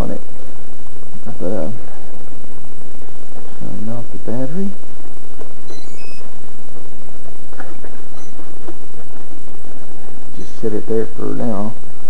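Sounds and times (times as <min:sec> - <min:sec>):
steady loud hiss: 0:00.0 - 0:12.0.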